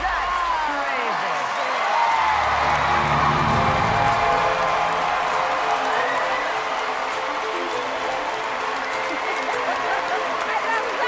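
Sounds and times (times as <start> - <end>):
crowd cheering and applauding: 0.0 - 11.0
music playing: 2.1 - 11.0.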